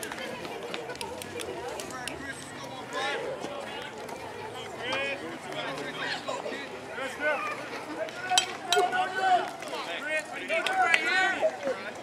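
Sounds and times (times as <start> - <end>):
voices calling and shouting: 0.0 - 12.0.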